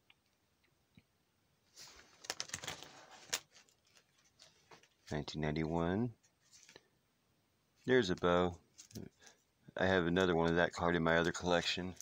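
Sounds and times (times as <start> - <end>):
plastic page rustling: 1.7 - 5.2, 6.3 - 6.9, 7.8 - 9.4, 10.2 - 12.0.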